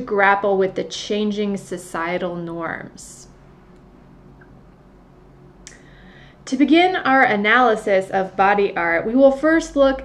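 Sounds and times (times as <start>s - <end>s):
faint low hum: 0.0s - 10.0s
soft intake of breath: 5.7s - 6.4s.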